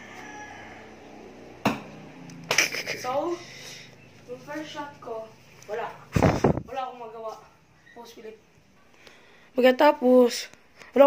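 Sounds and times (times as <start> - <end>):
dart hitting with a knock: 1.6 - 2.0.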